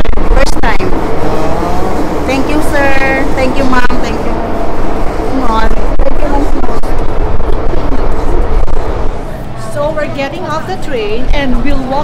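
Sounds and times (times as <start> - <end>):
subway train rumbling: 0.0 - 12.0
people talking: 0.1 - 1.1, 2.2 - 4.4, 5.2 - 8.5, 9.3 - 12.0.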